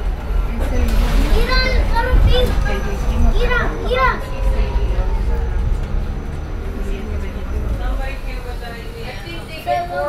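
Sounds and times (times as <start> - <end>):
electric bus rumble: 0.0 - 10.0
children talking and calling out: 0.4 - 10.0.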